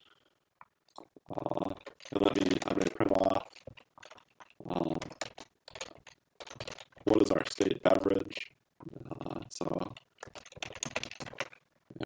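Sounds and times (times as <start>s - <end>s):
computer keyboard typing: 0.9s - 8.5s, 9.1s - 12.0s.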